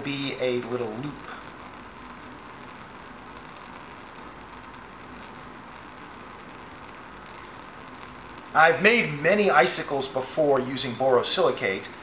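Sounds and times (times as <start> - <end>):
bunsen burner flame hissing: 0.0 - 12.0.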